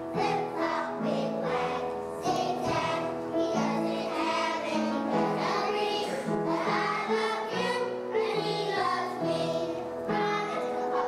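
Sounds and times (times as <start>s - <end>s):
children's choir singing: 0.0s - 11.0s.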